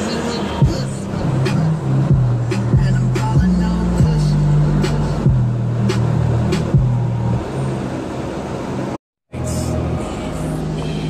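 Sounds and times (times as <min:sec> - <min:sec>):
music with heavy bass on car stereo: 0:00.0 - 0:11.0.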